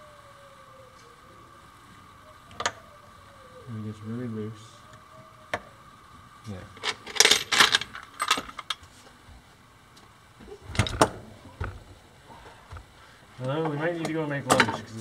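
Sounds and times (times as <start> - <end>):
metal parts clinking: 6.8 - 8.8.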